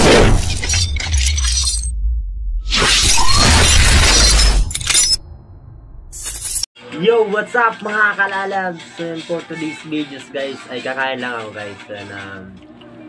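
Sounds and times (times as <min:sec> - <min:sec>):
deep bass rumble: 0:00.0 - 0:02.8, 0:04.6 - 0:06.2
loud crashing hits: 0:00.0 - 0:06.2.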